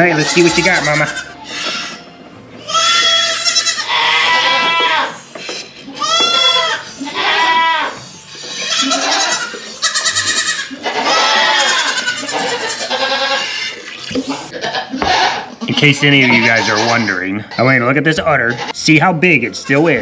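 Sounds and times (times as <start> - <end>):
goats bleating loudly: 0.0 - 17.8, 18.4 - 18.8.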